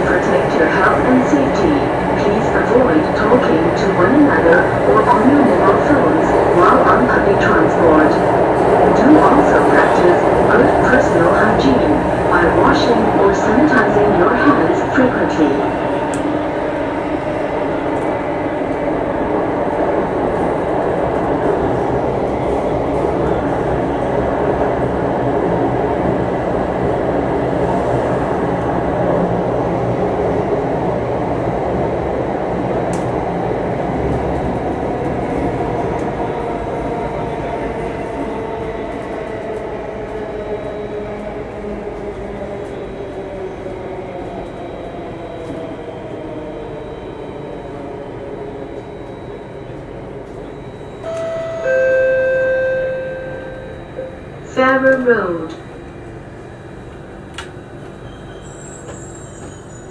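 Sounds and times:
train wheels rumbling on rail: 54.3s - 59.9s.

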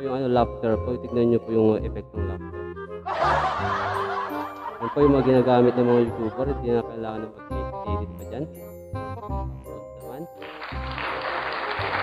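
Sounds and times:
background music: 0.0s - 12.0s
recorded laughter: 3.1s - 6.7s.

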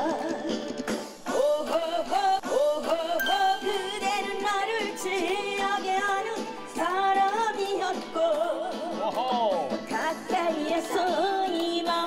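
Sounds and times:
woman singing into microphone: 9.9s - 12.0s.

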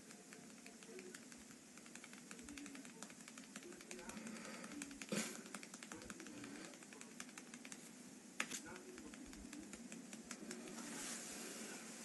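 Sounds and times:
low background voices: 0.0s - 12.0s.

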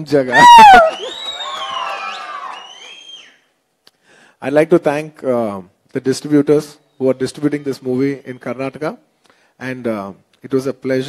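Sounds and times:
audience cheering and whooping: 0.3s - 3.4s
shrill gliding whistles: 0.7s - 3.5s.

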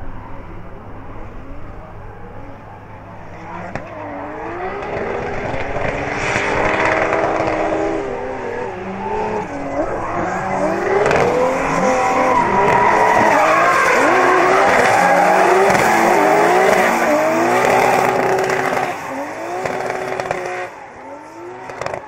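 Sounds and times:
car engines revving: 0.0s - 22.0s.

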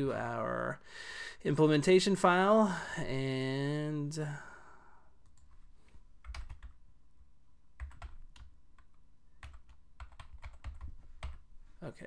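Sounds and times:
typing on computer keyboard: 6.2s - 6.8s, 7.8s - 11.4s.

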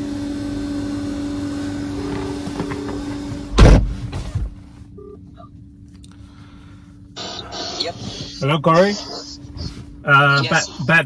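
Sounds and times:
steady hum: 0.0s - 11.0s
loud thump: 3.5s - 4.6s
phone ringback tone: 5.0s - 5.2s.

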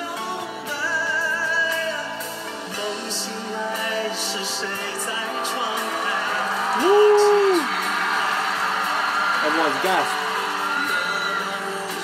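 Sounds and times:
man singing: 0.0s - 7.7s, 10.7s - 12.0s
live pop band playing: 0.0s - 12.0s
loud vocal whoop: 5.2s - 12.0s.

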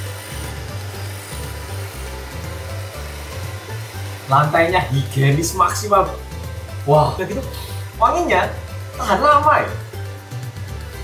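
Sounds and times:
background music with bass line: 0.0s - 11.0s
robot mop running: 0.0s - 11.0s.

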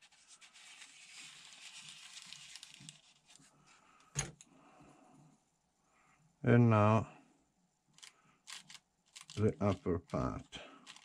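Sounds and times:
paper rustling and rubbing: 0.0s - 3.7s.

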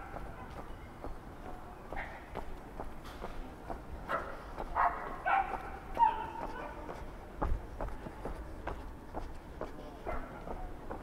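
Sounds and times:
footsteps: 0.0s - 11.0s
dog barking: 4.1s - 6.8s, 10.0s - 10.4s.

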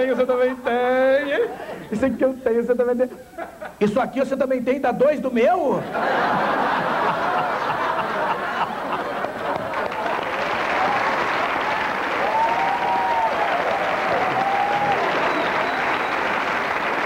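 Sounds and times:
audience laughing: 5.8s - 10.6s
audience applauding: 6.6s - 17.0s.

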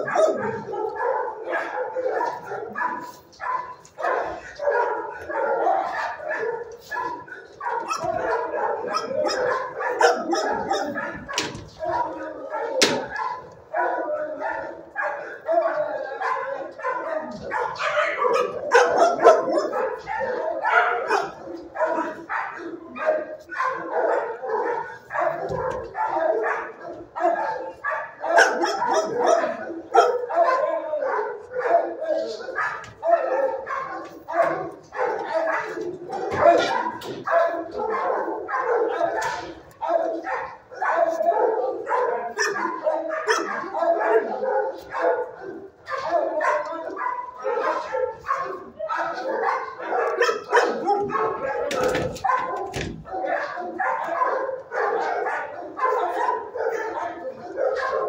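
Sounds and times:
many dogs barking: 0.0s - 58.0s.

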